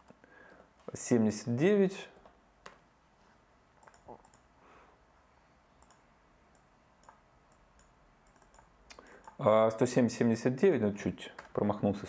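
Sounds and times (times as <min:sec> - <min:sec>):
mouse and keyboard clicks: 0:03.8 - 0:04.5, 0:05.8 - 0:09.4.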